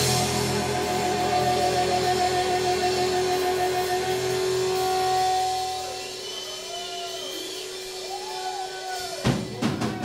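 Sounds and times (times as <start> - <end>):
electric guitar note ringing: 0.0 - 6.7
short wavering tones: 0.0 - 6.7.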